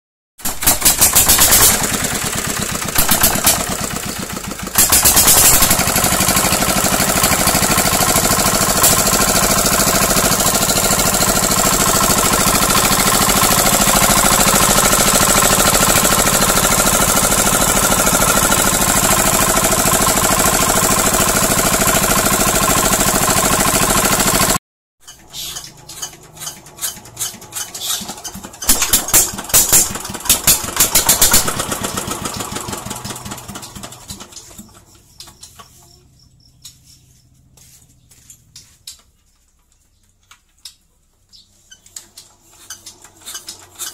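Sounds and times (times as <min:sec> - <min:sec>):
diesel engine running: 0:01.0 - 0:24.6, 0:25.4 - 0:34.7
metallic knocks and clatters: 0:25.1 - 0:31.5.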